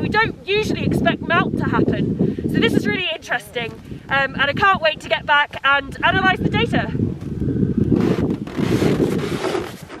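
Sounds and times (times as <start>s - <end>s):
wind gusting across microphone: 0.0s - 10.0s.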